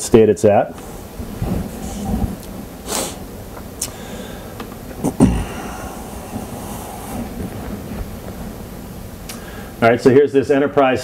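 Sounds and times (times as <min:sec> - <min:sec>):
room noise rumble and hiss: 0:00.0 - 0:11.0.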